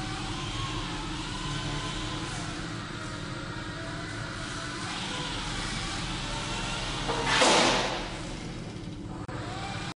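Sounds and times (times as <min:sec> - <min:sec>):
helicopter rotor whirring: 0:00.0 - 0:09.9.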